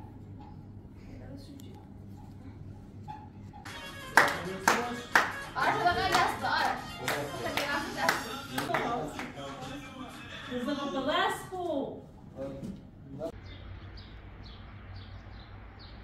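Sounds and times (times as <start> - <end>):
hand clapping in rhythm: 3.7 - 9.9
voices: 3.7 - 13.4.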